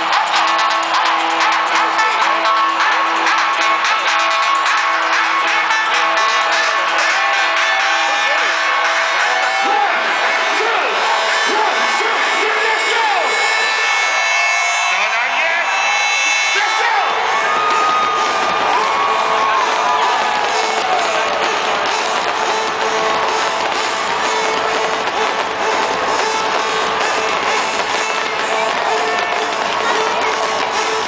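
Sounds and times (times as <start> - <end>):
crowd cheering and whooping: 0.0 - 31.0
loud electronic dance music: 0.0 - 31.0.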